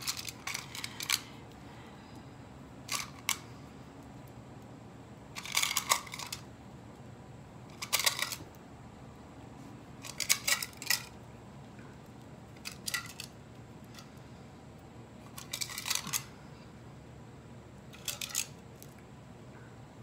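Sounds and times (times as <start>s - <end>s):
bead bars clicking and rattling: 0.0s - 1.3s, 2.8s - 3.5s, 5.3s - 6.5s, 7.7s - 8.5s, 10.0s - 11.2s, 12.6s - 14.1s, 15.2s - 16.3s, 17.9s - 18.9s.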